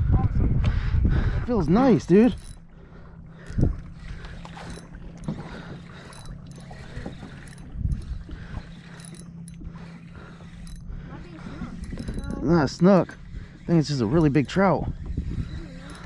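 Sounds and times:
fishing reel whirring: 1.5s - 16.0s
reel clicks: 1.6s - 16.0s.

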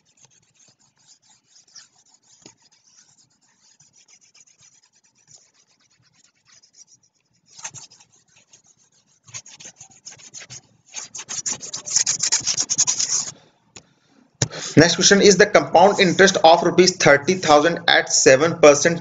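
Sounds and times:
stylus scratching on tablet: 0.0s - 13.4s, 14.9s - 17.8s.

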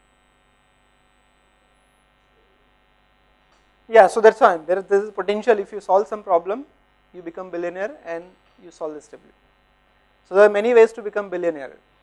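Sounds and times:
faint electrical hum: 0.0s - 12.0s
man's voice: 3.9s - 6.6s.

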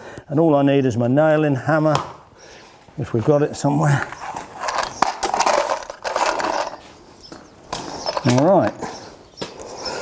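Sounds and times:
rustling and scuffing: 2.7s - 9.6s.

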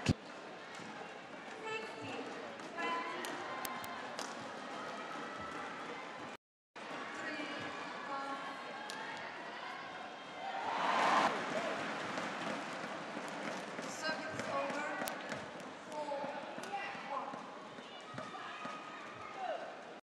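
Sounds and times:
crowd voices: 0.0s - 19.9s
crowd cheering: 7.8s - 13.4s.

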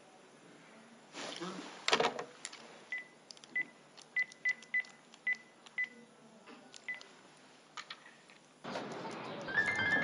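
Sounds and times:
phone keypad beeps: 2.9s - 6.0s, 6.9s - 7.1s.

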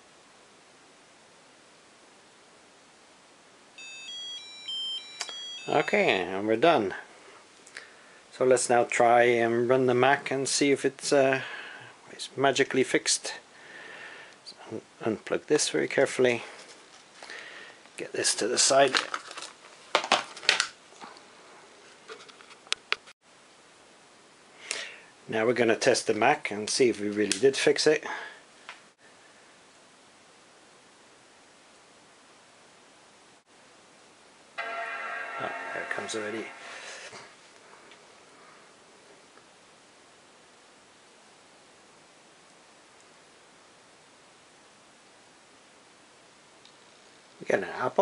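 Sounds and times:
faint steady hiss: 0.0s - 48.0s
buzzer beeping tune: 3.8s - 6.2s, 34.6s - 37.1s.

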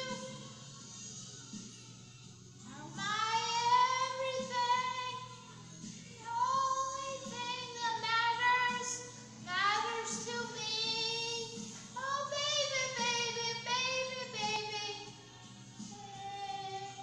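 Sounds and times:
woman singing with vibrato: 0.0s - 0.6s, 2.7s - 5.3s, 6.2s - 15.1s, 15.9s - 17.0s.

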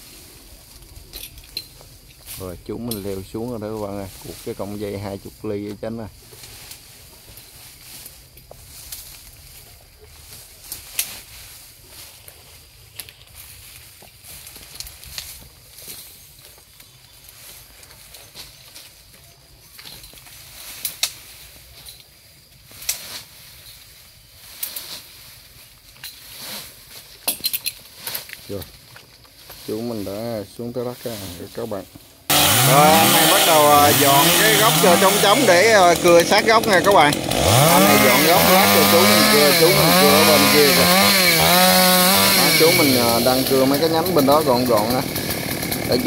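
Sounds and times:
faint steady hiss: 0.0s - 32.3s.

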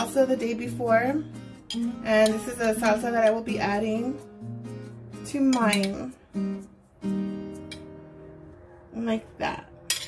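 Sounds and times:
acoustic guitar chords ringing: 0.0s - 5.7s, 6.3s - 8.4s.

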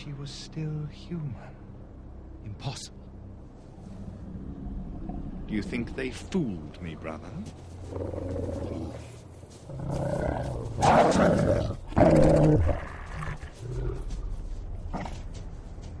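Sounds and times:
low steady rumble: 0.0s - 9.8s
deep animal growls and snarls: 3.8s - 5.6s, 7.8s - 15.4s.

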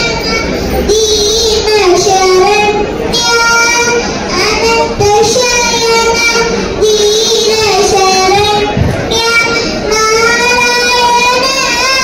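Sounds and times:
girl singing into a microphone: 0.0s - 12.0s.

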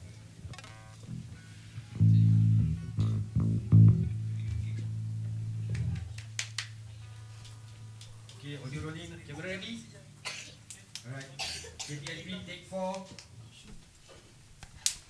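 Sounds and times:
low amp hum: 0.0s - 11.0s
electric bass guitar plucked: 0.4s - 8.4s.

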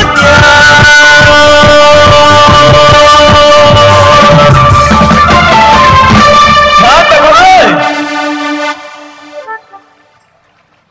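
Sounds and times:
live band playing: 0.0s - 10.3s.

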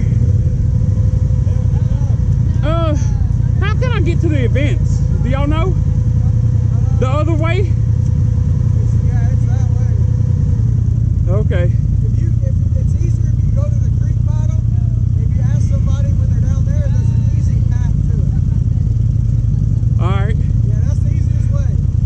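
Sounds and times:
atv engine idling: 0.0s - 22.0s
people talking: 1.4s - 7.8s, 8.8s - 10.1s, 11.3s - 19.0s, 20.0s - 21.8s.

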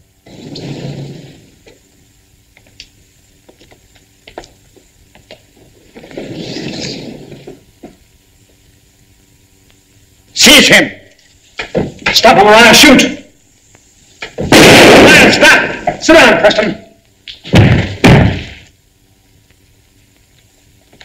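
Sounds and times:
sliding door rolling open: 0.2s - 1.6s, 6.0s - 7.6s.

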